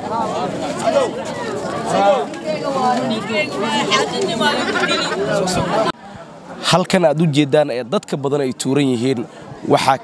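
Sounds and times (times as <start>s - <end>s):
background voices chattering: 0.0s - 7.4s.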